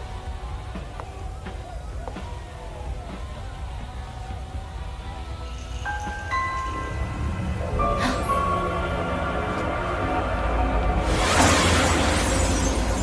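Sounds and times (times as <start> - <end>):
low rumbling drone: 0.0 - 13.0
held chime-like notes: 5.6 - 11.2.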